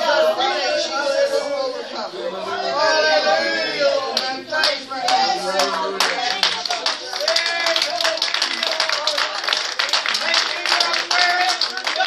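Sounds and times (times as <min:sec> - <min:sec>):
voices talking over one another: 0:00.0 - 0:09.6
sharp hand claps: 0:06.0 - 0:12.0.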